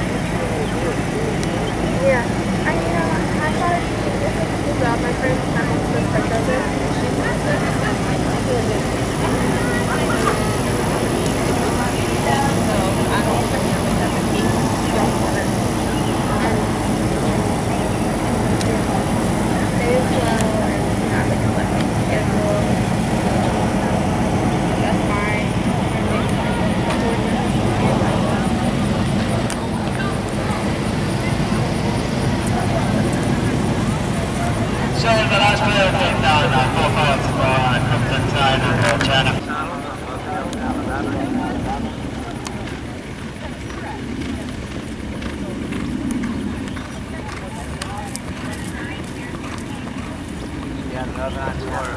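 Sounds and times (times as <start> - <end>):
outdoor background: 0.0 - 51.9
people chattering: 0.0 - 51.9
steady low rumble: 0.0 - 51.9.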